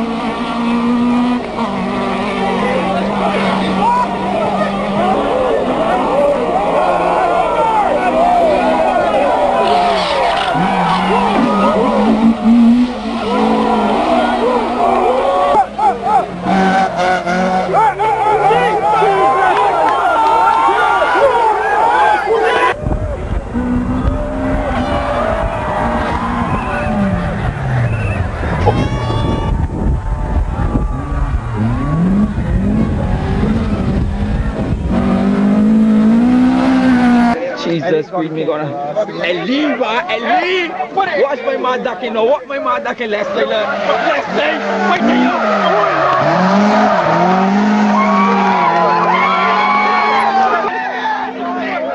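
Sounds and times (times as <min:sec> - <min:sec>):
car engine revving: 0:00.0 - 0:20.0, 0:22.7 - 0:37.4, 0:43.5 - 0:50.7
tyres squealing: 0:07.2 - 0:19.4.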